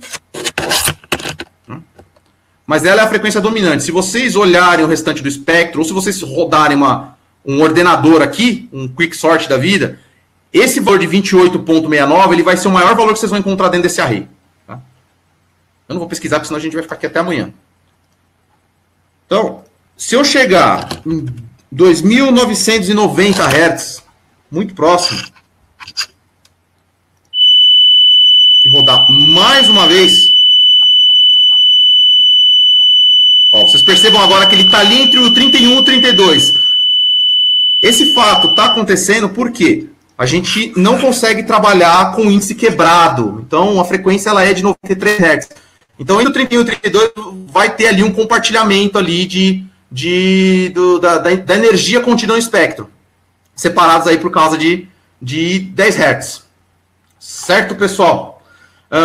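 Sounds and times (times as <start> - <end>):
rubbing and rasping noises: 0.0 - 2.2, 25.0 - 26.2
electronic test tone: 27.3 - 39.3.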